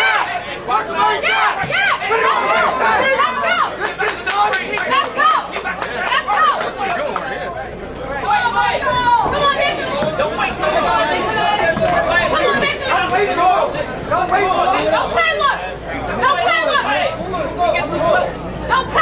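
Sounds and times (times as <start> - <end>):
crowd chatter in hall: 0.0 - 19.0.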